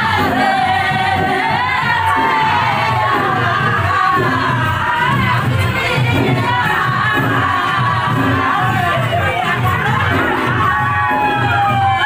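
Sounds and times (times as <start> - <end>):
music: 0.0 - 12.0
voices singing together: 0.0 - 12.0.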